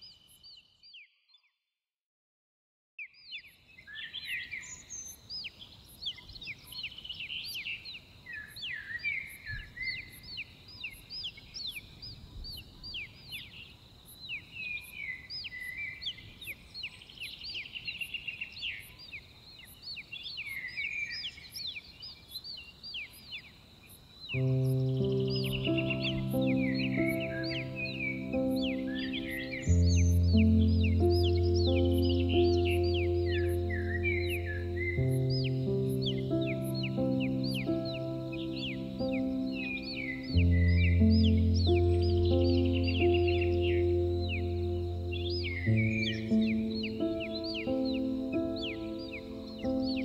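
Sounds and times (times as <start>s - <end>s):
small birds chirping: 0.0s - 1.6s, 3.0s - 50.0s
soft sustained music chords: 24.3s - 50.0s.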